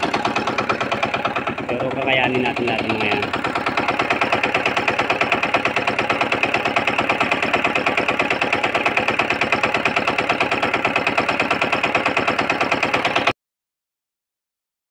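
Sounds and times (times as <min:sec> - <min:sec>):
small engine clattering: 0:00.0 - 0:13.4.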